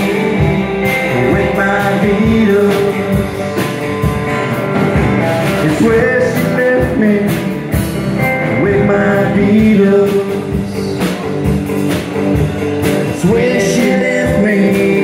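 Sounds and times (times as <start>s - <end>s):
live band playing: 0.0s - 15.0s
drum strokes: 0.1s - 15.0s.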